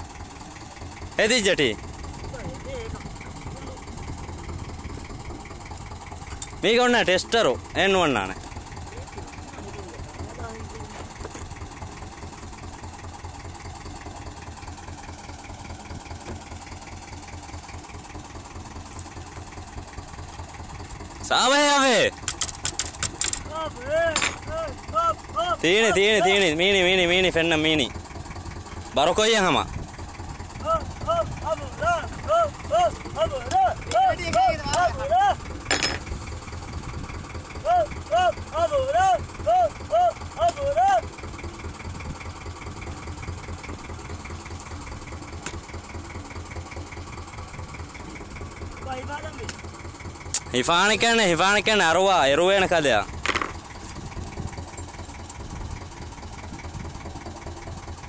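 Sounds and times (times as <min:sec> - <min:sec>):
boat engine idling: 0:00.0 - 0:58.0
person calling out high-pitched: 0:30.6 - 0:35.4, 0:37.6 - 0:41.1.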